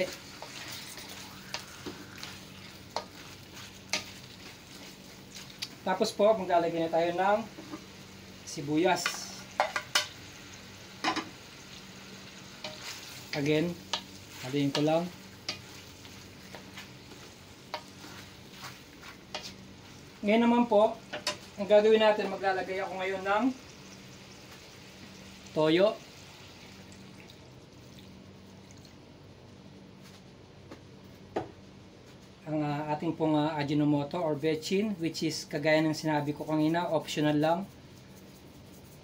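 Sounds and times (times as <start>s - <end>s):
spatula scraping metal wok: 0.0s - 5.0s, 12.6s - 19.6s
meat sizzling in oil: 0.0s - 28.0s.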